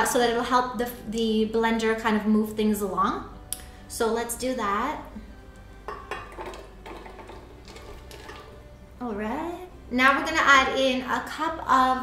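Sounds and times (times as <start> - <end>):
soft background music: 0.0 - 12.0
nuts clattering into glass jar: 6.4 - 8.5.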